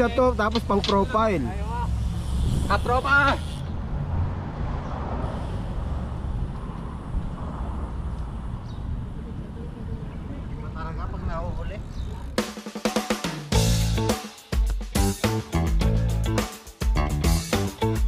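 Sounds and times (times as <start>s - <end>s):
road traffic rumble: 0.0s - 12.5s.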